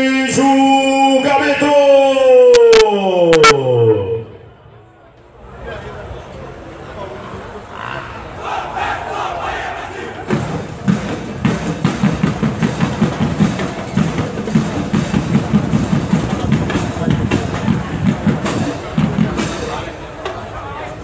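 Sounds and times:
people cheering and shouting: 0.0 - 4.8, 7.7 - 10.8
marching band drums: 8.8 - 20.5.

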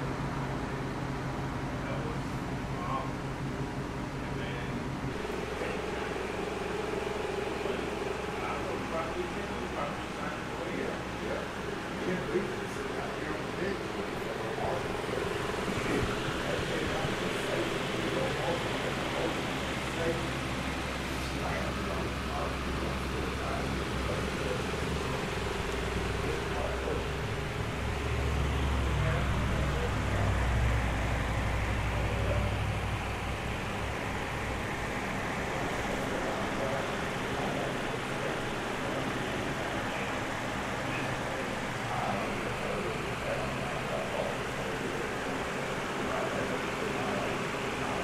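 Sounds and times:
faint indistinct voices: 0.0 - 48.0
low room hum: 0.0 - 48.0.

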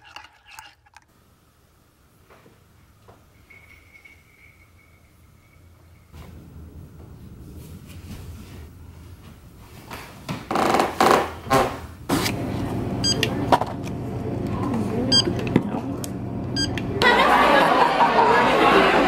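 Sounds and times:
shop background noise: 7.6 - 17.5
checkout scanner beeps: 13.0 - 13.4, 15.1 - 15.4, 16.5 - 16.8.

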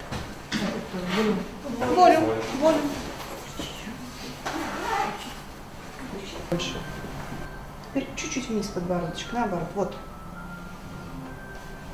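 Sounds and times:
low room noise: 0.0 - 11.9.

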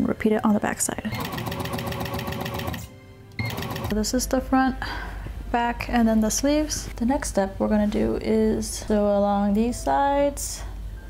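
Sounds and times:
overlock machine stitching: 1.2 - 4.0.

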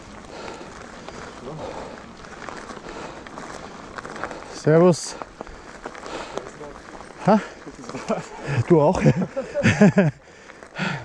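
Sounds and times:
bike clicks and rattles: 0.0 - 11.0
bike tyres rustling over dry leaves: 0.0 - 11.0.

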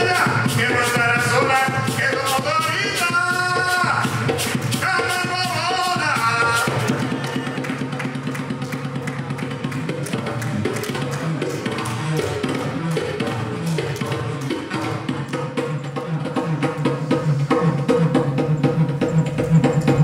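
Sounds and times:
hand drums: 0.0 - 20.0.

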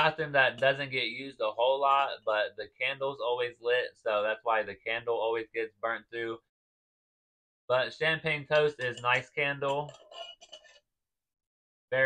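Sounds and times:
glass jar clinks and scrape: 8.6 - 10.8.

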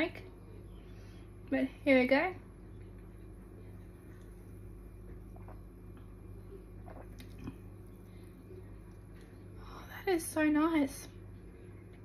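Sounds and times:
low hum: 0.0 - 12.0
sipping and swallowing: 3.6 - 9.4.

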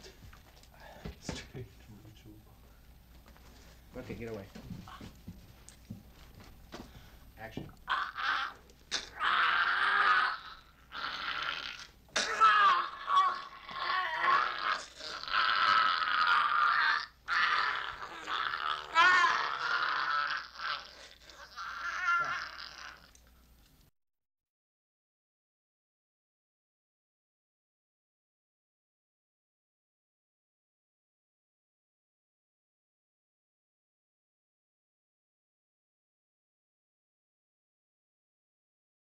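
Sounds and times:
people screaming and shrieking: 7.9 - 11.6.

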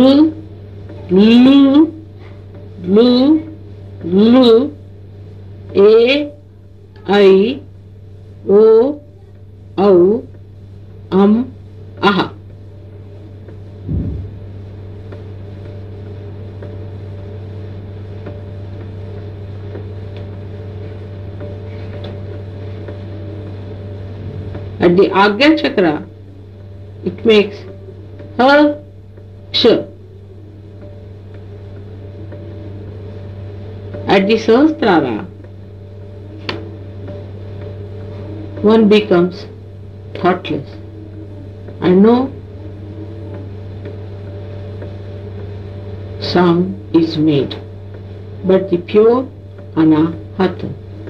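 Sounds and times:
low electrical hum: 0.0 - 51.0
person speaking on old recording: 2.8 - 4.8, 24.2 - 26.1, 27.0 - 27.7, 28.4 - 28.8, 29.5 - 30.0, 34.1 - 35.3, 40.2 - 40.8, 41.8 - 42.4, 46.2 - 47.6, 48.4 - 50.8
short low sound: 13.8 - 14.5.

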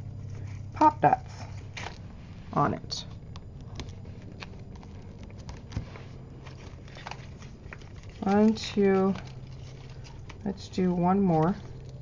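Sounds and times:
low steady hum: 0.0 - 12.0
paper pieces being handled: 3.0 - 12.0.

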